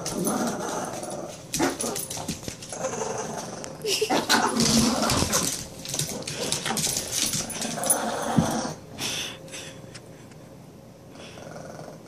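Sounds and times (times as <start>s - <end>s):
dogs play growling and whining: 0.0s - 9.2s, 11.1s - 12.0s.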